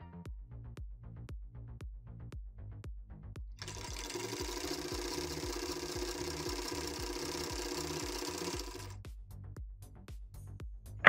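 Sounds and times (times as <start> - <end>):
sewing machine stitching: 3.6 - 9.0.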